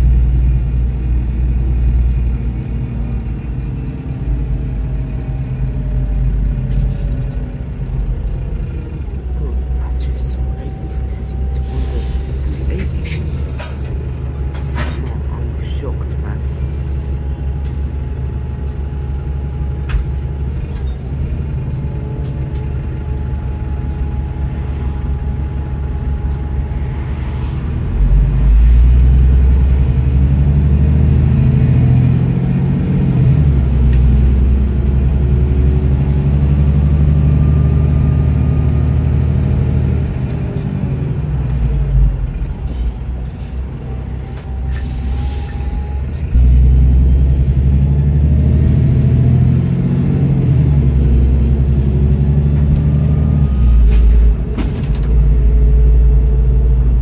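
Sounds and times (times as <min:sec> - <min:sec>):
bus engine accelerating: 0:00.0 - 0:57.0.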